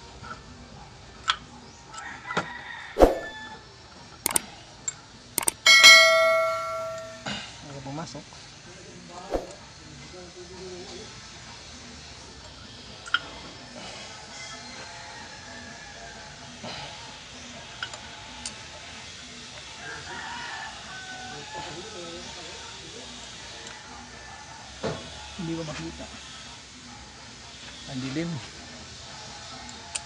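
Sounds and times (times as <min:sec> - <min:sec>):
metal clicks and taps: 0:05.4 - 0:07.2.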